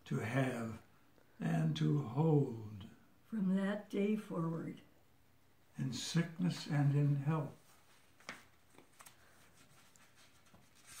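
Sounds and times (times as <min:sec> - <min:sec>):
paper pages rustling: 0:07.6 - 0:11.0.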